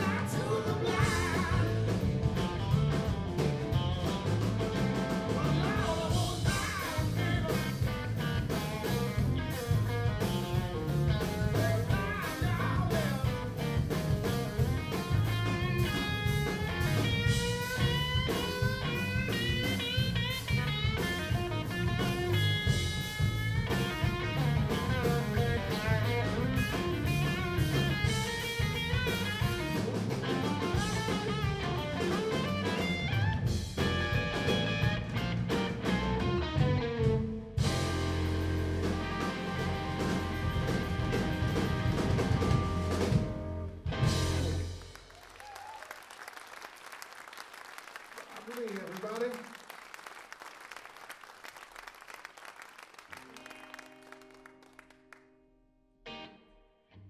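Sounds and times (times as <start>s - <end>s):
electric bass: 0.0s - 45.1s
electric guitar: 0.0s - 45.3s, 53.1s - 55.4s, 56.0s - 57.0s
drum kit: 0.0s - 45.8s
audience applause: 44.8s - 55.2s.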